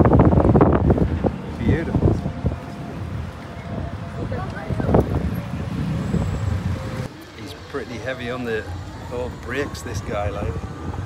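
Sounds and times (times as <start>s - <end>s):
road and wind rumble: 0.0s - 11.0s.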